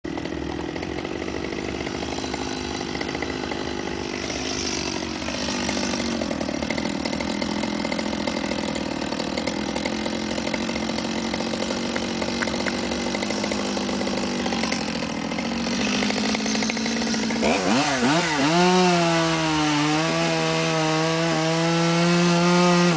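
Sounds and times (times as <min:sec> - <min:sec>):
chainsaw cutting wood: 0:00.0 - 0:22.9.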